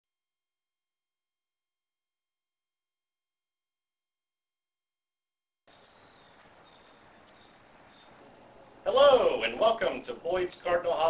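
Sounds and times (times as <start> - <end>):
outdoor background noise: 5.7 - 11.0.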